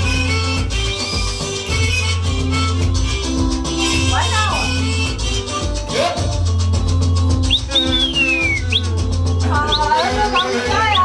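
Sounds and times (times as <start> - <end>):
person whistling: 0.0 - 4.1, 7.2 - 11.0
dance music with heavy bass: 0.0 - 11.0.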